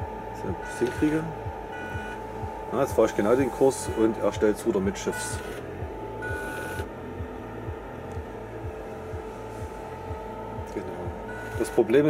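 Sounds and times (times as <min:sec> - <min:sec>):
small electric motor whining: 0:00.3 - 0:12.0.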